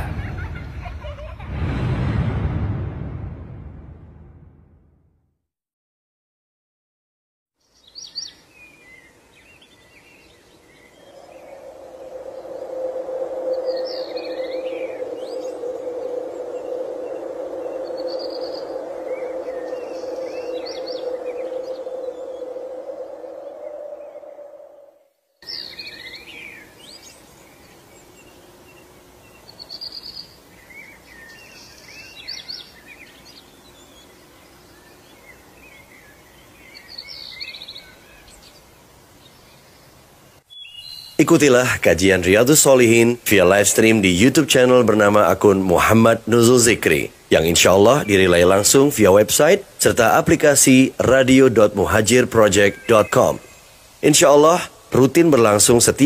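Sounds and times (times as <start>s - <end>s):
small birds chirping: 7.6s - 24.5s, 25.4s - 56.0s
steady drone: 11.1s - 24.2s.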